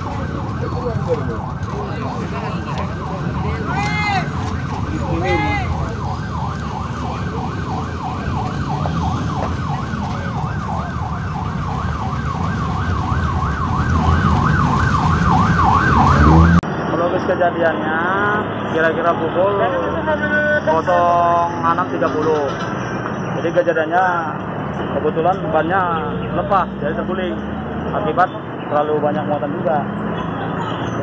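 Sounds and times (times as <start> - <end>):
siren yelping: 0.0 - 16.6
low rumble of vehicle engines: 0.0 - 31.0.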